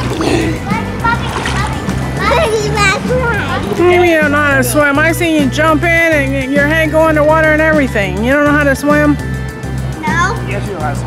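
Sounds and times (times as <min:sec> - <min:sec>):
pool water splashing: 0:00.0 - 0:09.0
background music with bass: 0:00.0 - 0:11.0.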